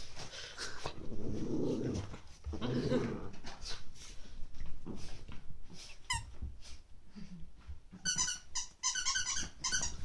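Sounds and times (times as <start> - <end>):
squeaky dog toy squeaking: 8.0 - 10.0.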